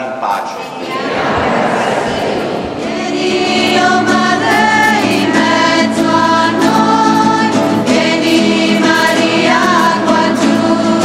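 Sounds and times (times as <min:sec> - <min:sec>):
strummed acoustic guitars: 0:00.8 - 0:11.0
women singing a hymn: 0:00.8 - 0:11.0.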